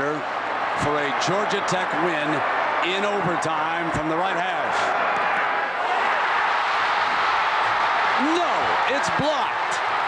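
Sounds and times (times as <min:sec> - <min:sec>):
stadium crowd roaring: 0:00.0 - 0:10.0.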